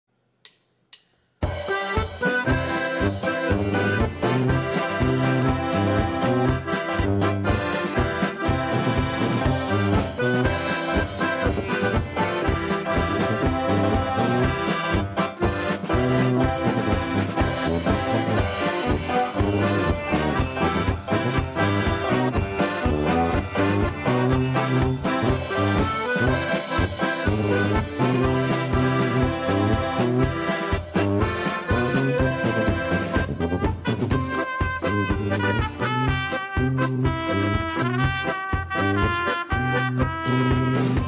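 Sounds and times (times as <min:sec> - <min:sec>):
drum kit beat: 0:00.5 - 0:41.0
electric keyboard: 0:01.6 - 0:41.0
piano accordion: 0:01.6 - 0:41.0.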